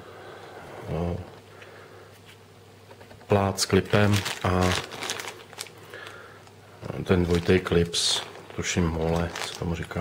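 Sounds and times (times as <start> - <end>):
plastic bag crinkling: 3.3 - 10.0.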